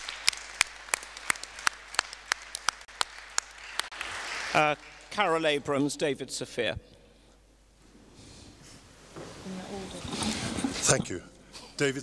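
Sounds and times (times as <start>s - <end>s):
close hand claps: 0.0s - 5.1s
audience applauding: 0.0s - 5.5s.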